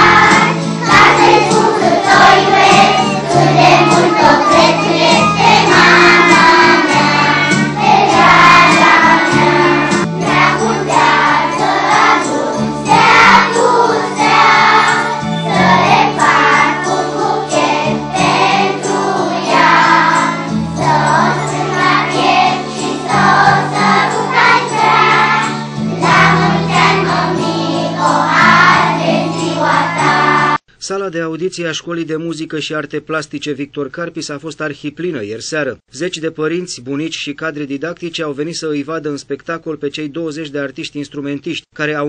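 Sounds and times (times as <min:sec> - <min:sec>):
children's choir singing: 0:00.0 - 0:30.6
instrumental accompaniment: 0:00.0 - 0:30.6.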